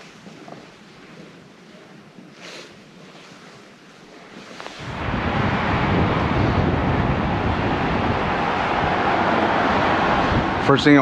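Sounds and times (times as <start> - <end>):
wind buffeting microphone: 4.6 - 11.0.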